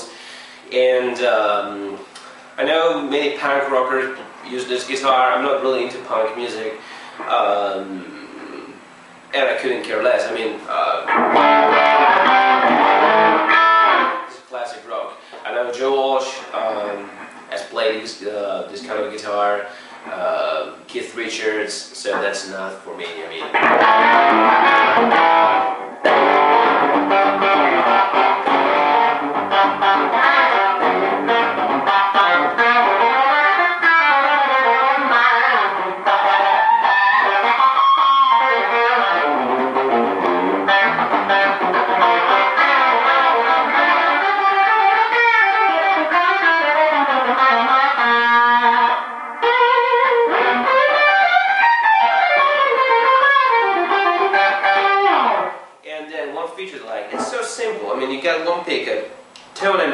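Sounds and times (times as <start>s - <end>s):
overdriven electric guitar rock lines: 10.7s - 14.4s, 23.0s - 55.8s.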